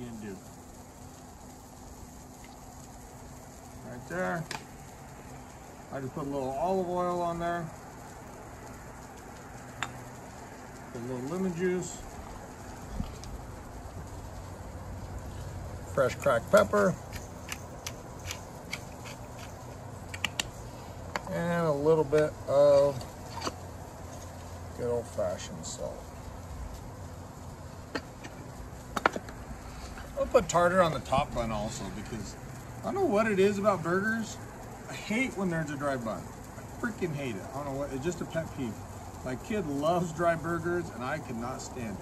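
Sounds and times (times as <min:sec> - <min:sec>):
low background rumble: 0:00.0 - 0:42.0
outdoor background noise: 0:00.0 - 0:42.0.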